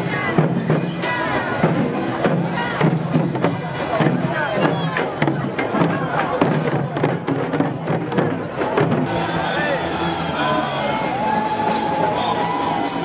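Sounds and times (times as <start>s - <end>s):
hand drums beating: 0.0s - 13.0s
crowd cheering: 8.6s - 13.0s
people shouting: 9.1s - 13.0s.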